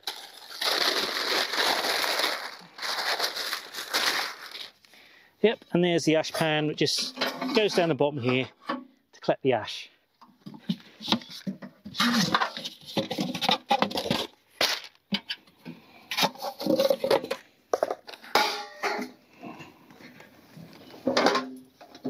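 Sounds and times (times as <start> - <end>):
cardboard rustling and scraping: 10.5 - 14.3.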